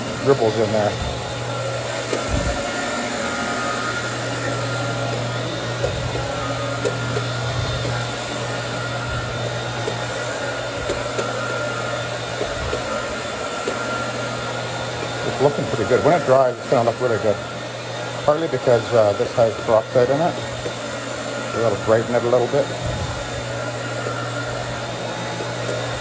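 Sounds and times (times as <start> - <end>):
carpet cleaning machine humming: 0.0 - 26.0.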